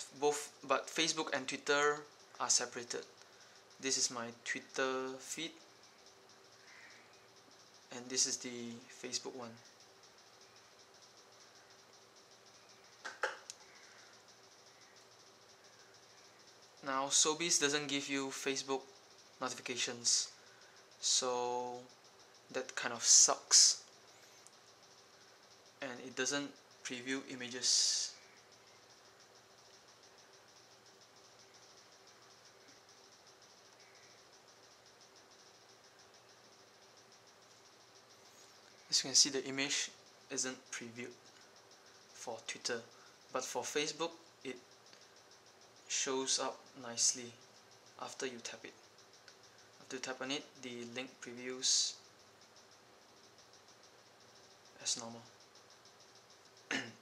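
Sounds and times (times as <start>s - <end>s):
faint steady hum: 0.0s - 57.0s
pulsing high chirr: 0.0s - 57.0s.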